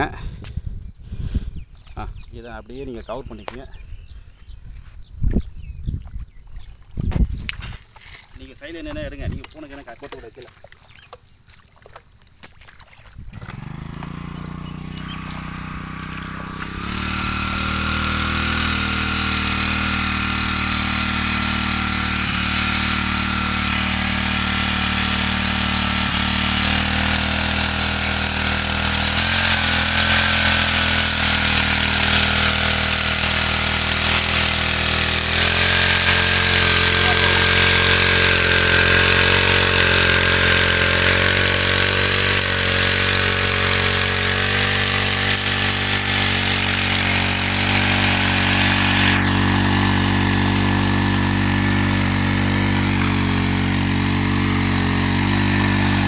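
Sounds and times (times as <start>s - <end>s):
small petrol engine running: 13.4s - 56.0s.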